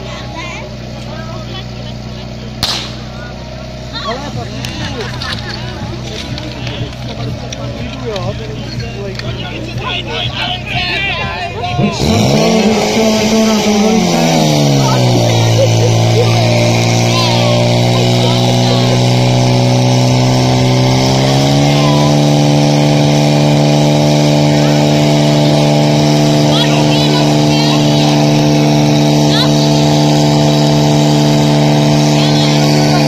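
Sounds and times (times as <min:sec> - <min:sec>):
fire pump engine running hard: 0:00.0 - 0:33.0.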